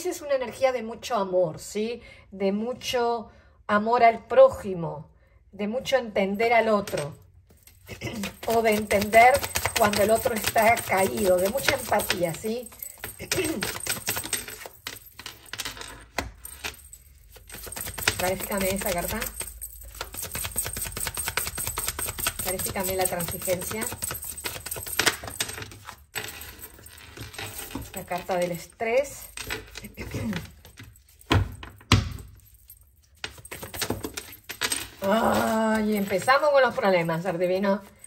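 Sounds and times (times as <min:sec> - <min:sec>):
cards clicking and tapping on table: 0:08.0 - 0:16.6, 0:17.3 - 0:25.7.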